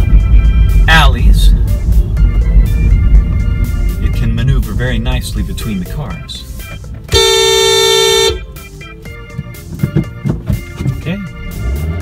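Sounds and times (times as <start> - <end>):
background music: 0.0 - 12.0
low car cabin rumble: 0.0 - 12.0
car horn honk: 7.1 - 8.6.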